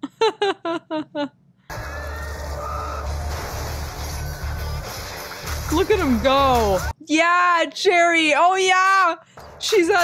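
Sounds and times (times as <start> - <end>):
woman laughing: 0.0 - 1.4.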